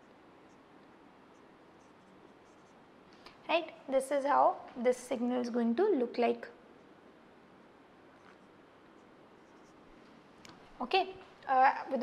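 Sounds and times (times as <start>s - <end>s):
low room hiss: 0.0s - 12.0s
marker writing on whiteboard: 1.3s - 2.8s, 8.1s - 9.9s.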